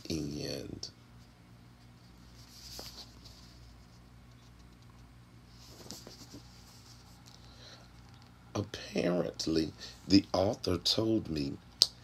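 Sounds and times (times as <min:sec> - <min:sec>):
low steady hum: 0:00.0 - 0:12.0
paper pages rustling: 0:02.2 - 0:08.4.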